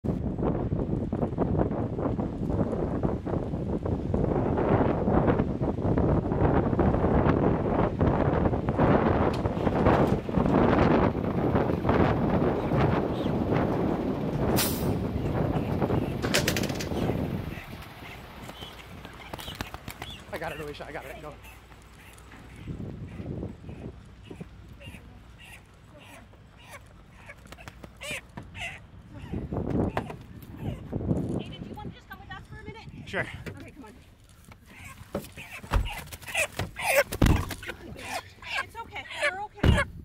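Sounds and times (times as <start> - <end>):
heavy trucks rumbling: 6.7 - 31.1
knocks and clatter: 16.2 - 17.2.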